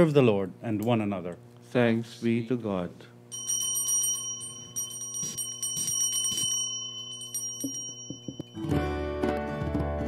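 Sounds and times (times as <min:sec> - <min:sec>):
low electrical hum: 0:00.0 - 0:10.0
high bell-like ringing: 0:03.3 - 0:09.0.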